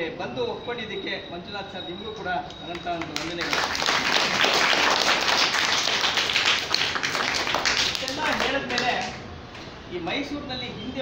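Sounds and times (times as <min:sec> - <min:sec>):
audience applauding: 0:03.0 - 0:09.2.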